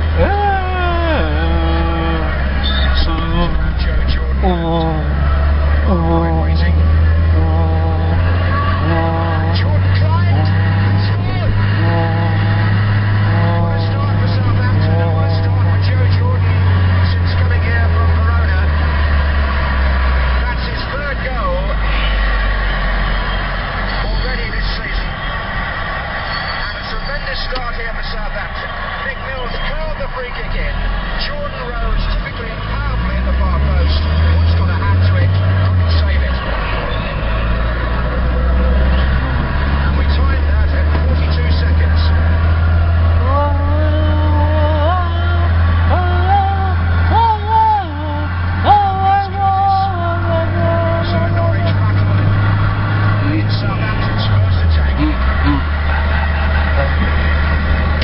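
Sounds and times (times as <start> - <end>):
voice-like sound: 0.0 - 16.6
car engine droning: 0.0 - 58.0.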